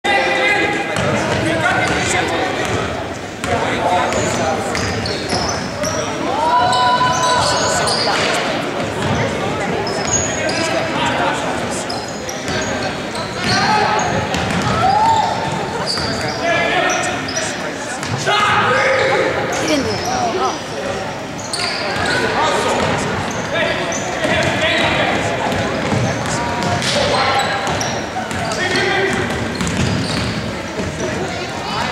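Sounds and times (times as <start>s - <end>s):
sneaker squeaks: 1.0s - 11.0s, 11.7s - 18.2s, 19.5s - 20.7s, 21.4s - 25.1s, 25.8s - 31.8s.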